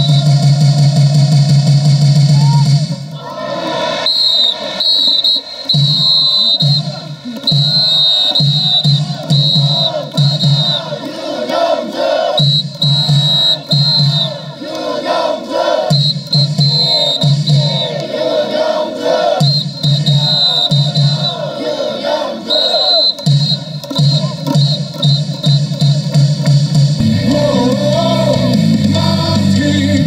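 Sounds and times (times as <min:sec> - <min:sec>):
low drum beat: 0:00.0 - 0:03.1, 0:05.8 - 0:11.1, 0:12.4 - 0:14.6, 0:15.9 - 0:17.8, 0:23.2 - 0:30.0
stadium music over loudspeakers: 0:00.0 - 0:30.0
crowd chanting and singing: 0:02.9 - 0:25.8, 0:27.0 - 0:30.0.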